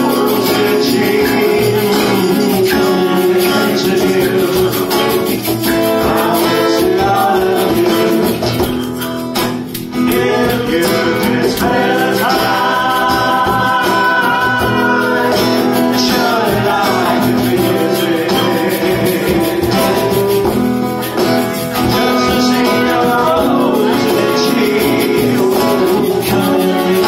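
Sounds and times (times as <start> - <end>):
men singing: 0.0 - 9.0, 9.8 - 27.0
acoustic guitar strumming: 0.0 - 27.0.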